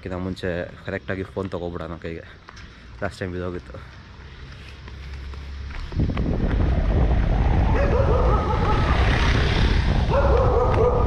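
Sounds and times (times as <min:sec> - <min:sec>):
wind buffeting microphone: 0:05.7 - 0:11.0
dog barking: 0:07.8 - 0:09.0, 0:10.1 - 0:11.0.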